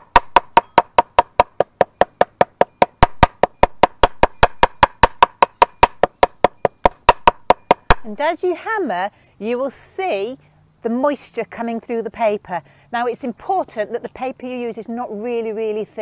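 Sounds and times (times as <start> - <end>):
hammer pounding on paper over wood: 0.0 - 8.2.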